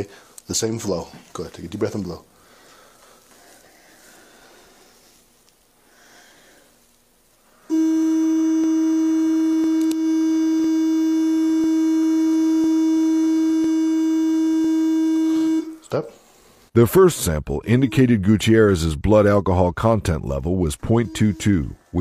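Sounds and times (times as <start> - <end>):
loud buzzing tone: 7.7 - 15.8.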